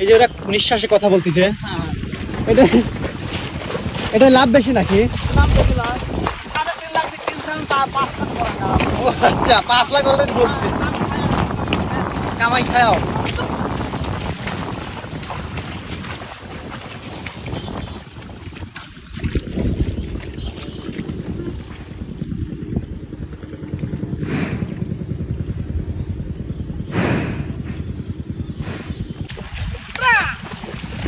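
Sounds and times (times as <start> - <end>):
water and mud sloshing: 0.0 - 25.3, 27.8 - 31.0
wind rumbling on microphone: 0.0 - 31.0.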